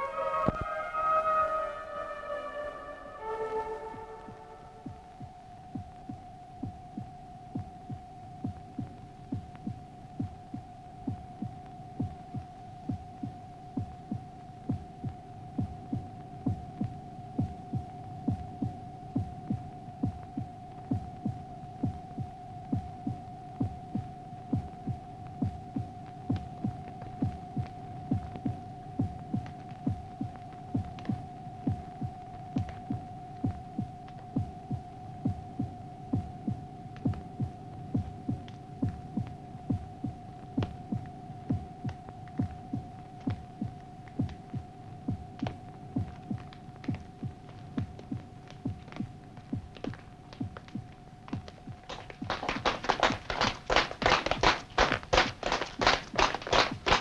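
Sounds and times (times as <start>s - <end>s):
low rhythmic throb: 0.0s - 57.0s.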